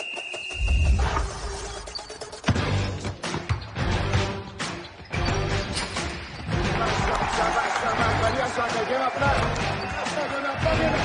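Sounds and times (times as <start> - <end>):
dramatic orchestral music: 0.7 - 11.0
basketball bouncing: 2.4 - 4.3
crowd cheering: 6.5 - 11.0.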